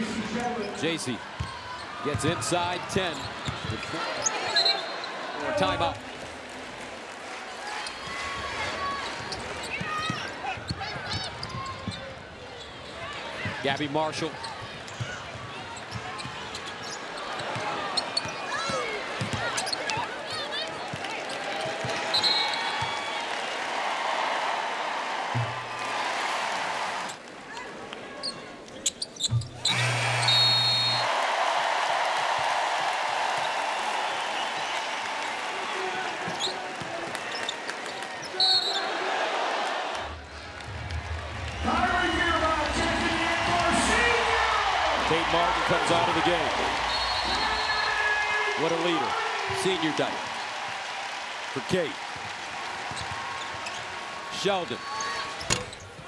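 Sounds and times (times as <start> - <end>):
arena crowd noise: 0.0 - 56.0
crowd cheering and applause: 5.0 - 11.4, 17.4 - 27.2, 29.7 - 55.4
sneakers squeaking on hardwood: 9.3 - 12.1, 28.2 - 29.8
referee whistle blasts: 22.1 - 22.7, 29.7 - 31.1, 38.3 - 38.9, 46.8 - 48.2.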